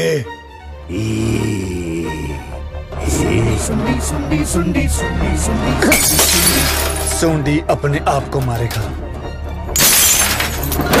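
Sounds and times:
film background music: 0.0 - 11.0.

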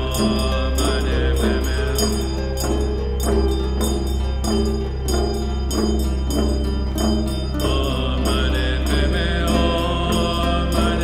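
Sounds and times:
steady low drone: 0.0 - 11.0
mantra chanted in a deep voice: 7.7 - 11.0.

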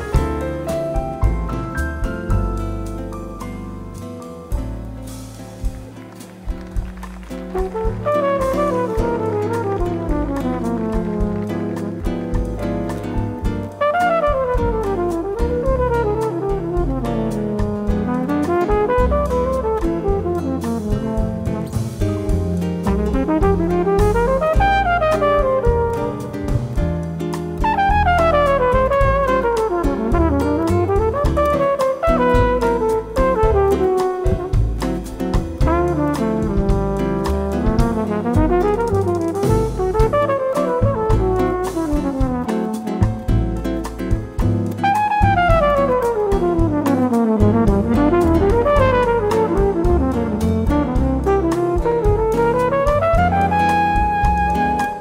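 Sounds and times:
bossa nova band: 0.0 - 55.0
flugelhorn jazz solo: 6.8 - 12.6, 13.7 - 26.8, 27.6 - 43.4, 44.8 - 55.0.

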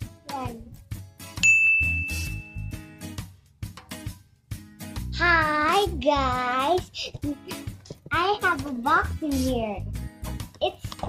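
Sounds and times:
bright ding: 1.4 - 2.8.

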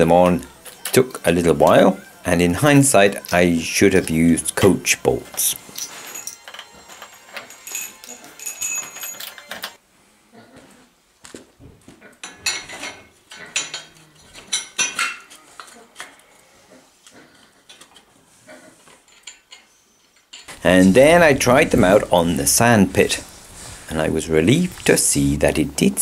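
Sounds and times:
ringing metallic notes: 2.7 - 9.8
metal clinks and rattles: 5.5 - 9.8, 19.0 - 22.0.

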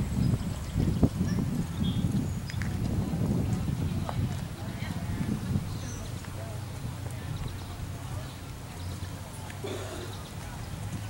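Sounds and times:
horse hooves cantering on sand: 0.6 - 9.6, 10.2 - 11.0.

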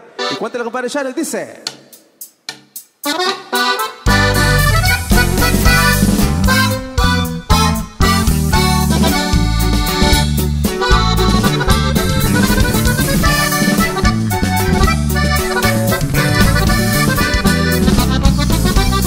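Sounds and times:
accordion melody: 0.0 - 0.8, 3.0 - 19.0
steady bass line: 4.1 - 19.0
strummed strings: 8.7 - 19.0.

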